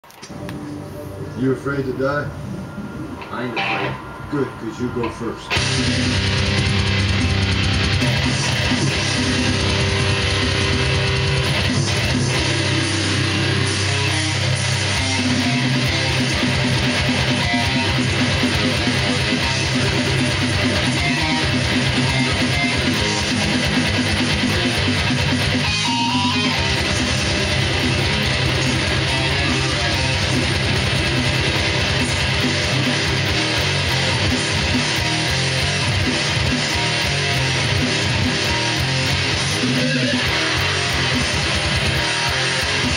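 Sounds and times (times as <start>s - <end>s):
electric guitar metal riffs: 0.1s - 42.9s.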